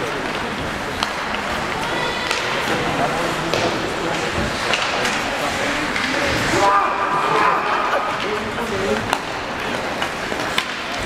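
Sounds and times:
hockey sticks clacking: 0.0s - 11.0s
hollow arena noise: 0.0s - 11.0s.

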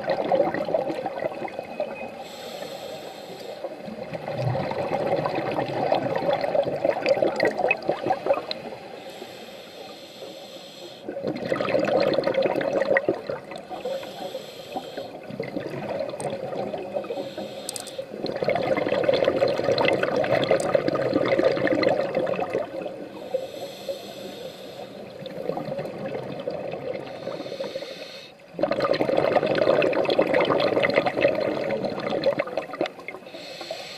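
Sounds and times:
bubbling exhalation underwater: 0.0s - 1.5s, 4.0s - 8.6s, 11.1s - 13.7s, 15.2s - 17.1s, 18.1s - 23.0s, 25.2s - 27.2s, 28.5s - 33.1s
regulator hissing inhalation: 2.2s - 3.7s, 8.9s - 11.1s, 13.8s - 15.2s, 17.0s - 18.2s, 23.2s - 25.1s, 27.1s - 28.4s, 33.2s - 33.9s.

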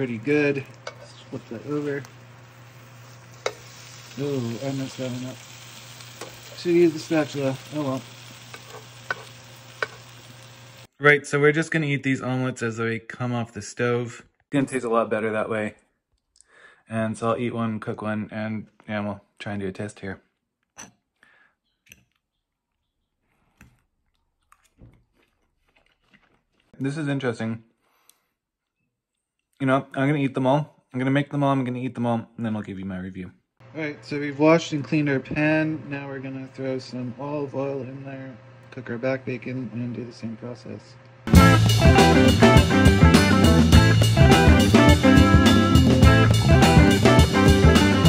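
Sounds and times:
faint frying in a pan: 0.0s - 10.9s
range hood fan humming: 0.0s - 10.9s, 33.6s - 42.6s
metal tongs tapping a pan: 3.4s - 3.7s, 8.5s - 10.0s
person chewing: 22.1s - 26.8s.

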